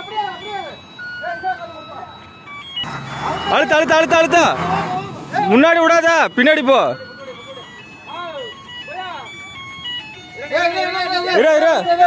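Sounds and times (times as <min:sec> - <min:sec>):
men shouting guiding calls: 0:00.0 - 0:02.3, 0:02.9 - 0:09.6, 0:10.2 - 0:12.0
electronic beeping tune: 0:00.0 - 0:04.5
vehicle engine rumble: 0:00.0 - 0:10.6.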